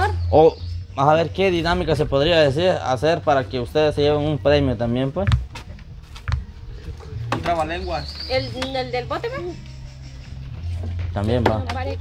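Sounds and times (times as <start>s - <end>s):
woman speaking: 8.3s - 9.6s, 11.6s - 12.0s.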